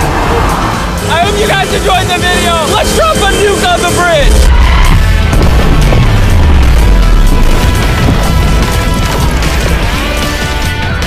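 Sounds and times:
music: 0.0 - 11.0
deep explosion rumble: 4.3 - 10.5.

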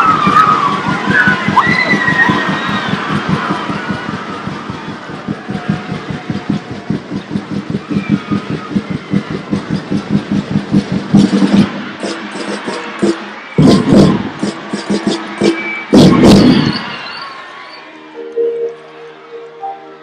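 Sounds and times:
drums beating a steady rhythm: 0.0 - 17.0.

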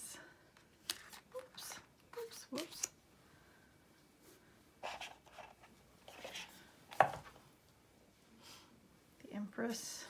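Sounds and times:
cards sliding rustles: 0.6 - 2.9.

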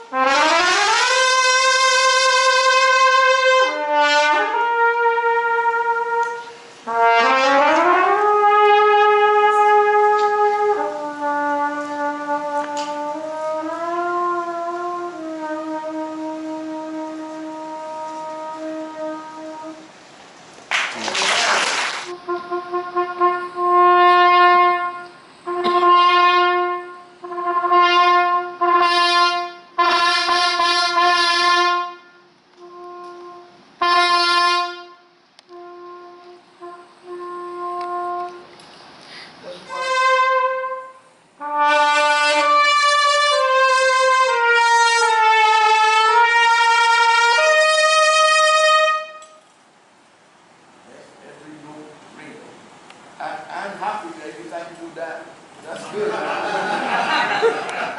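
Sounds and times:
solo trumpet playing: 0.0 - 20.2, 21.0 - 38.7, 39.4 - 49.5
short burst of noise: 19.7 - 22.6.

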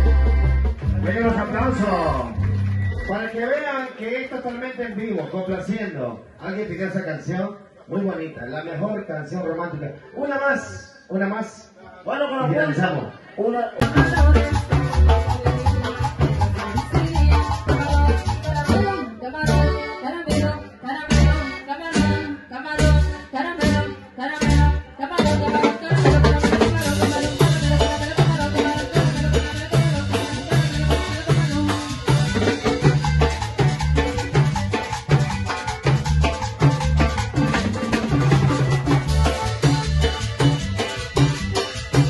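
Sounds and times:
strong bass notes: 0.0 - 3.1, 13.8 - 42.0
live dance band playing: 0.0 - 5.7, 13.8 - 42.0.

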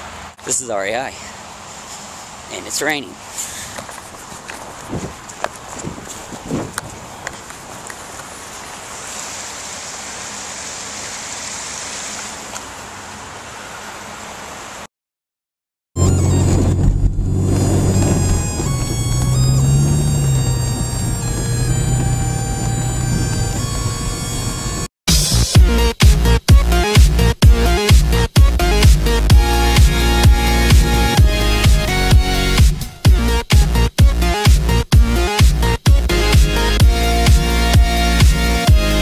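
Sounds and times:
camera rubbing against clothing: 3.8 - 8.0
steady rain: 7.1 - 14.9
loud music with heavy bass: 25.1 - 39.0.

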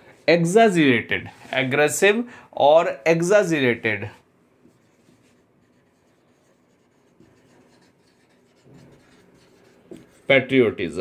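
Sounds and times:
marker writing on whiteboard: 4.6 - 10.4.

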